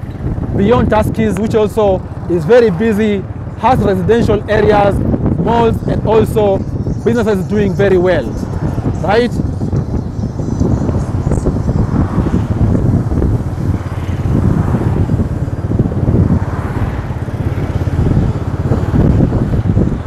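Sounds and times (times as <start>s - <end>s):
vehicle engine and road rumble: 0.0s - 20.0s
wind noise on microphone: 0.0s - 20.0s.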